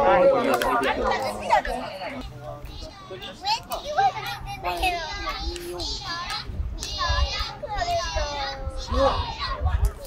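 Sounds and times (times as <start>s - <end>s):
children shouting and calling: 0.0s - 10.0s.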